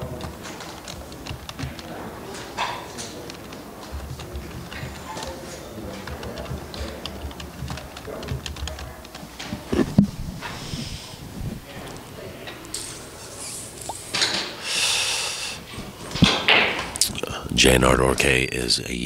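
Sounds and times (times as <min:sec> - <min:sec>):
pool balls clicking: 0:00.0 - 0:14.6, 0:15.7 - 0:17.3
background chatter: 0:00.0 - 0:19.0.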